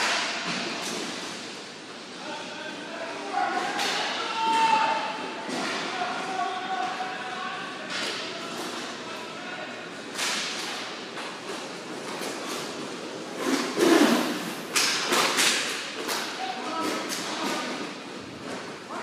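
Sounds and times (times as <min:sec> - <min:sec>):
hockey stick slaps: 0:10.1 - 0:12.7, 0:13.4 - 0:17.8.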